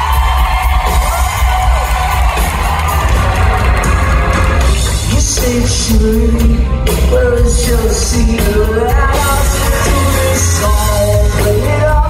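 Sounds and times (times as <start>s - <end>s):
bass guitar: 0.0s - 12.0s
drums: 0.0s - 12.0s
person singing: 4.8s - 12.0s.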